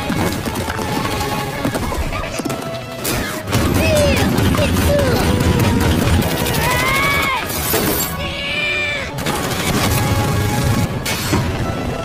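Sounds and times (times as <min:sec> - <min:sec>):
rapid gunfire: 0:00.0 - 0:07.8, 0:09.2 - 0:11.1.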